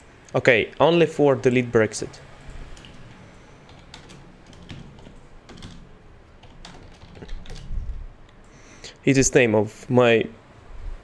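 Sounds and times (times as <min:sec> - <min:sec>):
computer keyboard key clicks: 0:03.7 - 0:05.8, 0:06.4 - 0:07.7.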